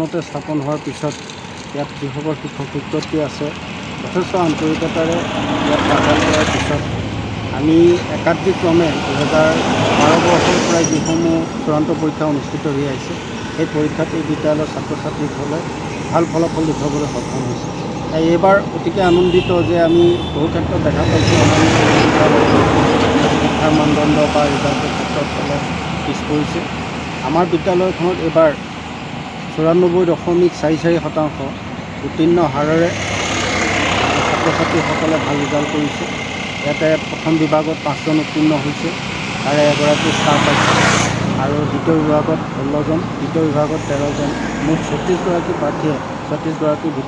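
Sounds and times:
man speaking: 0:00.0 - 0:01.2, 0:01.8 - 0:28.6, 0:29.5 - 0:33.0, 0:34.0 - 0:47.0
steady background noise: 0:00.0 - 0:19.8, 0:20.5 - 0:47.0.

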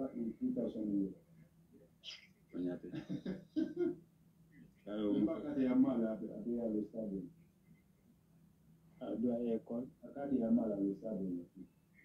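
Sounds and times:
person talking: 0:00.0 - 0:01.1, 0:02.1 - 0:03.9, 0:04.9 - 0:07.3, 0:09.0 - 0:11.6.

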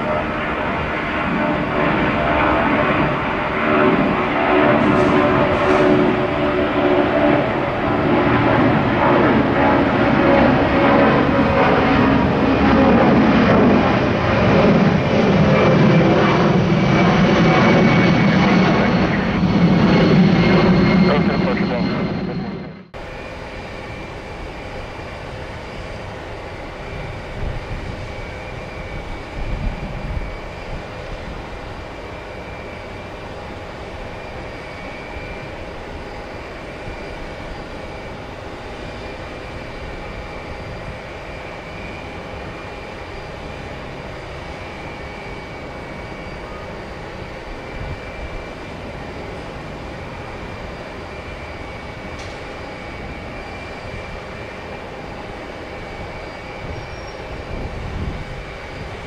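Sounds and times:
wind buffeting microphone: 0:00.0 - 0:20.6, 0:24.4 - 0:59.0
jet engines roaring: 0:00.0 - 0:59.0.

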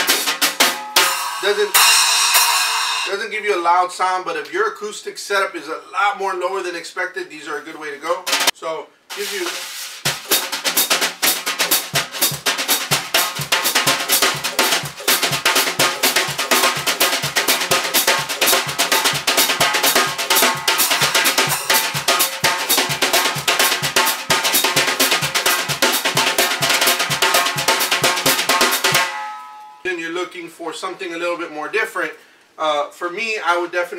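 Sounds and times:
brushes on snare drum: 0:08.2 - 0:08.5, 0:09.1 - 0:29.0.

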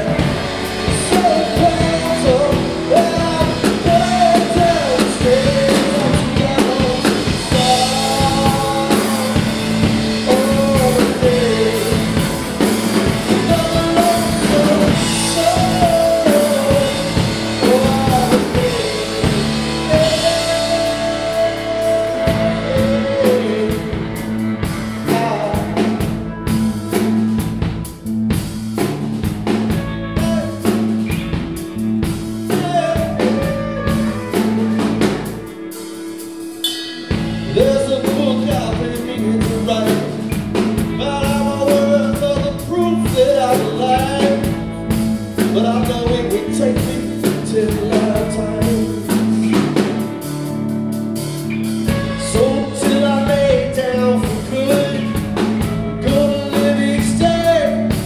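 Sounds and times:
man singing: 0:00.0 - 0:28.2, 0:29.5 - 0:58.0
drum kit: 0:00.0 - 0:58.0
electric bass: 0:00.0 - 0:58.0
electric guitars: 0:00.0 - 0:58.0.

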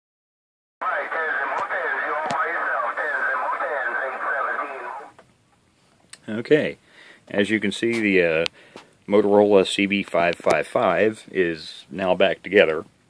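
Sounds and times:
radio speech through speaker: 0:00.8 - 0:05.2
faint radio clicks: 0:00.8 - 0:05.4.

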